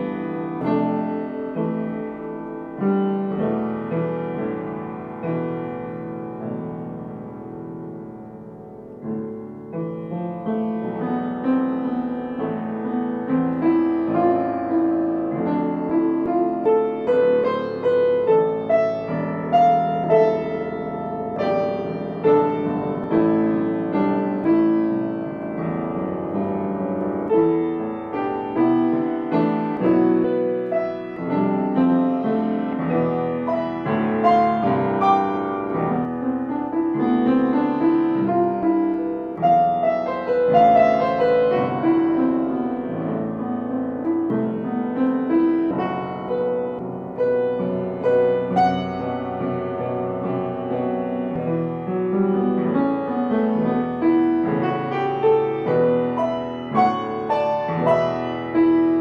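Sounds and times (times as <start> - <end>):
solo piano playing: 0.0 - 59.0.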